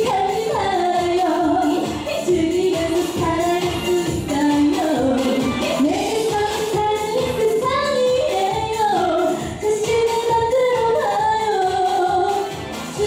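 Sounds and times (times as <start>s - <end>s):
pop dance backing track: 0.0s - 13.0s
woman singing into microphone: 0.0s - 13.0s.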